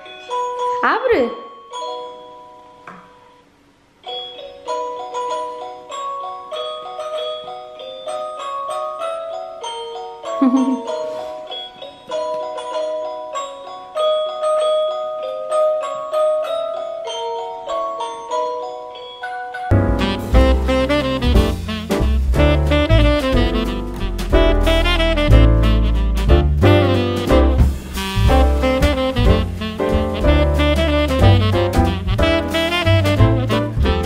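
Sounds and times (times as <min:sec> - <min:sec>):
tinkly electronic christmas melody: 0:00.0 - 0:21.1.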